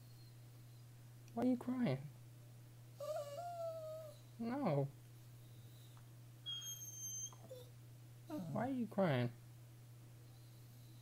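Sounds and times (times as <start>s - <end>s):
dog whining: 3.0s - 4.3s, 5.4s - 8.6s.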